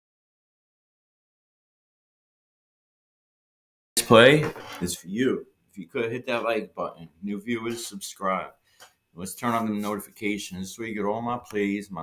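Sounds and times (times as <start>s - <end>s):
man speaking: 4.0s - 8.6s, 9.2s - 12.0s.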